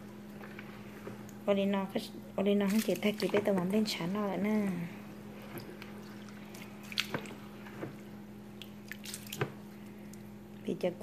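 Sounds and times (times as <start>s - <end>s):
steady low hum: 0.0s - 11.0s
liquid splashes and drips: 2.6s - 3.8s, 5.4s - 10.2s.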